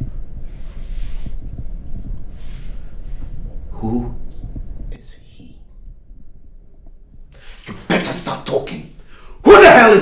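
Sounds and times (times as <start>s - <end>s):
low steady drone: 0.0s - 7.4s.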